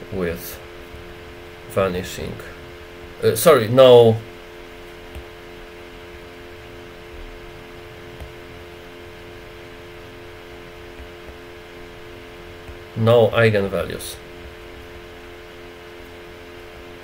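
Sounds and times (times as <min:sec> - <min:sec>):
fan humming: 0:00.0 - 0:17.0.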